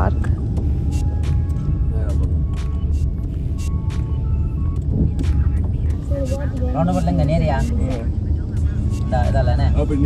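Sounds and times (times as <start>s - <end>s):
background music: 0.0s - 10.0s
vehicle road rumble: 0.0s - 10.0s.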